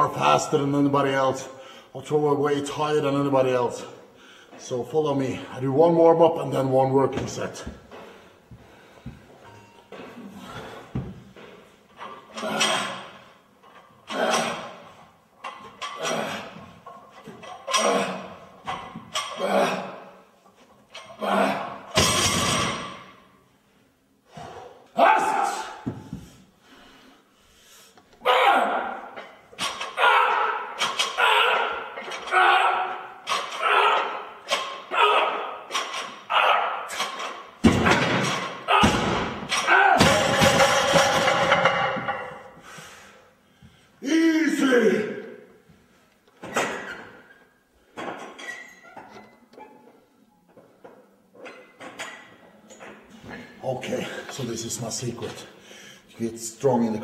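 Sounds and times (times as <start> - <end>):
barbell thudding: 21.9 - 23.2, 36.9 - 42.5.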